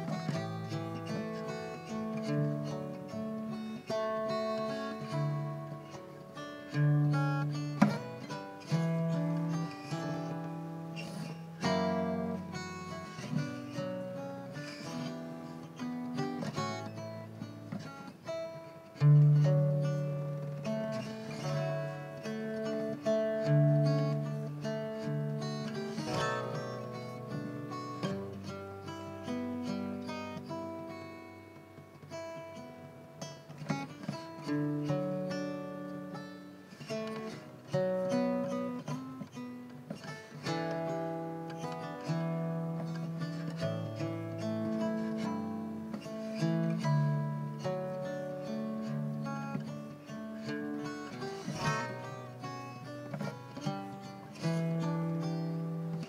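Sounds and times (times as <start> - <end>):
electric guitar fingerpicked: 0.0 - 56.0.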